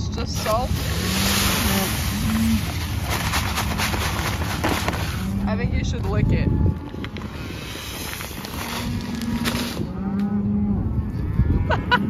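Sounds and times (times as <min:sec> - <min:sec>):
salt pouring into metal tub: 0:00.4 - 0:05.2.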